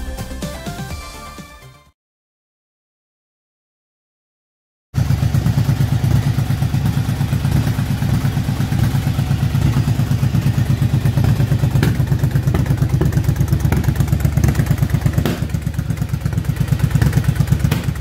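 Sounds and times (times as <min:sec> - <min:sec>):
motorcycle engine idling: 0:05.0 - 0:18.0.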